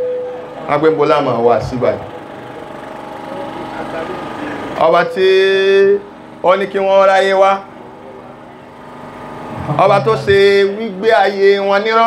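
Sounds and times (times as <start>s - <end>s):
steady mechanical hum: 0.0s - 12.0s
man speaking over amplification: 0.7s - 2.2s, 3.4s - 8.0s, 9.6s - 12.0s.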